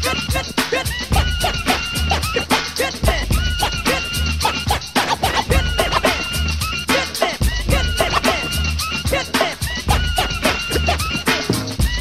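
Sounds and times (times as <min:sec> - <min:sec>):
hip hop drum beat with bass: 0:00.0 - 0:12.0
turntable scratches: 0:00.0 - 0:12.0.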